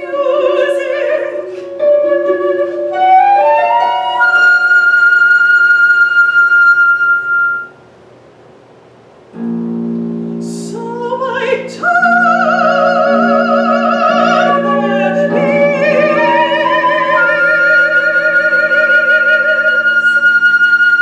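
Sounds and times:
woman singing: 0.0s - 6.6s, 10.4s - 21.0s
flute melody: 0.4s - 7.8s, 12.0s - 21.0s.

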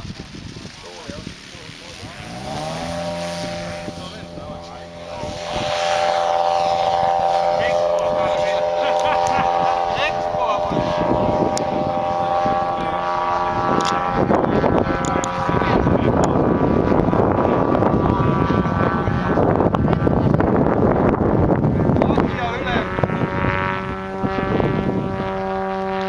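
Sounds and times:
model plane engine throttling up: 0.0s - 26.0s.

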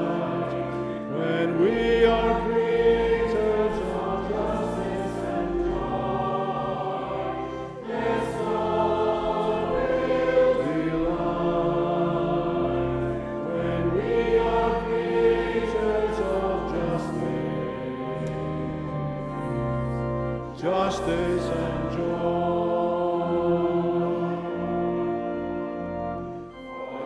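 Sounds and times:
choir singing a hymn: 0.0s - 27.0s
organ: 0.0s - 27.0s.

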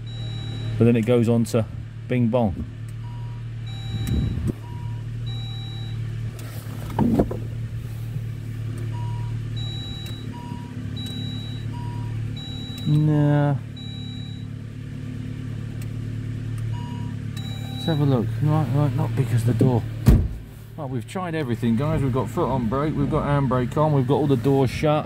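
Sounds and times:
dashboard warning chime: 0.0s - 1.0s, 3.0s - 6.2s, 8.9s - 14.6s, 16.7s - 18.6s
car engine idling: 0.0s - 25.0s.

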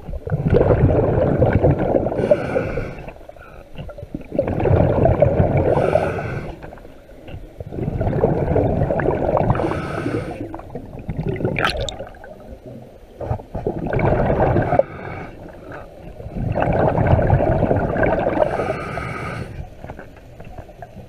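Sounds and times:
exhaled bubbles underwater: 0.0s - 19.6s
hissing regulator inhale: 2.2s - 3.7s, 5.7s - 6.8s, 9.6s - 10.6s, 14.7s - 15.9s, 18.4s - 19.7s.

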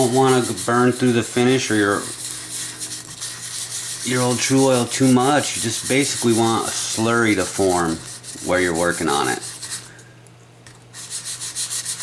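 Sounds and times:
sandpaper rubbing on wood: 0.0s - 9.9s, 10.9s - 12.0s.

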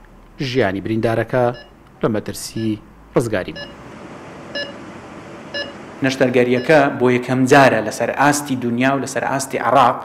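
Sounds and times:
steady room hiss: 0.0s - 10.0s
patient monitor beeps: 1.5s - 1.8s, 3.6s - 3.8s, 4.5s - 4.8s, 5.5s - 7.0s.

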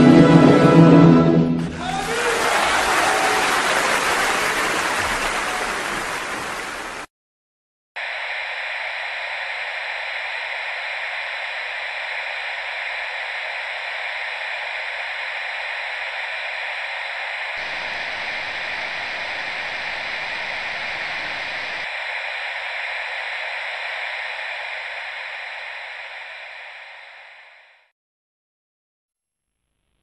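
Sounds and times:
television static hiss: 2.1s - 7.1s, 8.0s - 27.9s.

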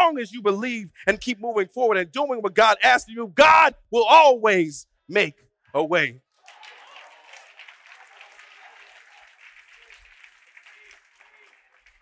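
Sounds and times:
congregation applauding: 6.3s - 12.0s.

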